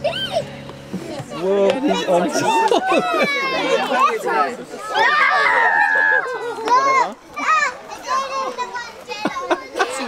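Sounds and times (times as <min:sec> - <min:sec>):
children squealing and chattering: 0:00.0 - 0:10.0.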